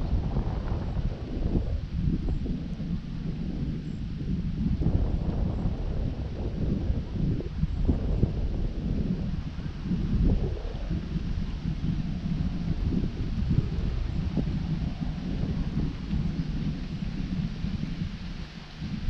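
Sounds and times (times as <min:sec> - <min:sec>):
steady faint hiss: 0:00.0 - 0:19.0
wind buffeting microphone: 0:00.0 - 0:19.0.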